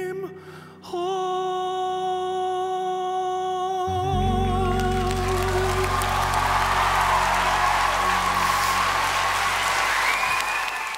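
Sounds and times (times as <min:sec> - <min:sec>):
band sustained final chord: 0:04.0 - 0:09.9
audience applause: 0:04.9 - 0:10.9.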